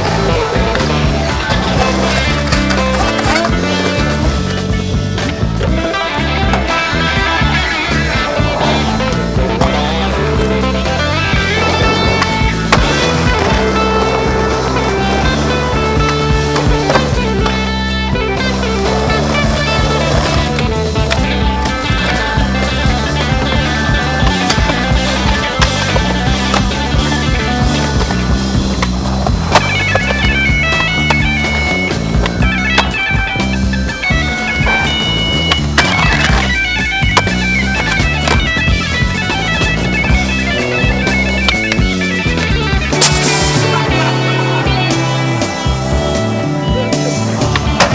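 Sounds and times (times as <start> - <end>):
skateboard clacks: 0.0 - 46.0, 46.8 - 47.9
guitar rock music: 0.0 - 47.9
skateboard wheels rolling: 0.0 - 47.9.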